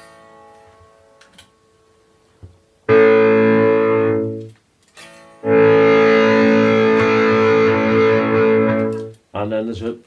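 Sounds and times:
electric guitar chord ringing: 0:02.9 - 0:09.2.

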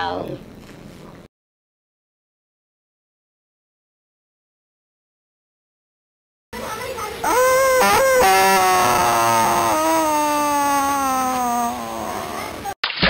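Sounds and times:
child crying out: 0:07.2 - 0:12.8
child's descending wail: 0:07.2 - 0:12.8.

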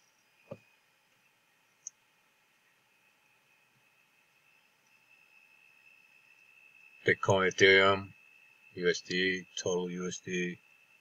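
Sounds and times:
faint high-pitched whine: 0:00.0 - 0:11.0
faint steady hiss: 0:00.0 - 0:11.0.

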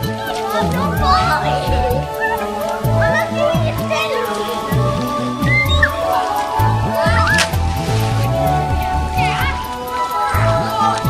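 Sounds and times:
children calling out: 0:00.0 - 0:11.0
music with steady beat: 0:00.0 - 0:11.0.

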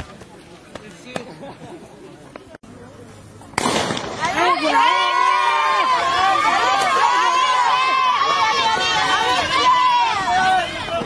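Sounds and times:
starting pistol crack: 0:03.6 - 0:04.2
high-pitched voices shouting and cheering: 0:04.2 - 0:11.0.

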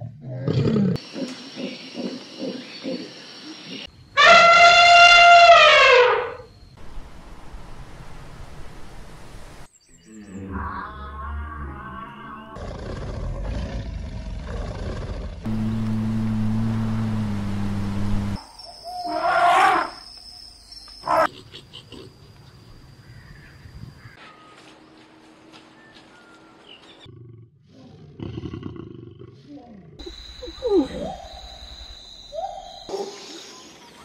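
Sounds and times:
lion growls: 0:00.0 - 0:01.0, 0:10.2 - 0:15.4, 0:27.0 - 0:30.0
elephant trumpeting: 0:04.2 - 0:06.4
low rumbling calls: 0:15.4 - 0:18.4.

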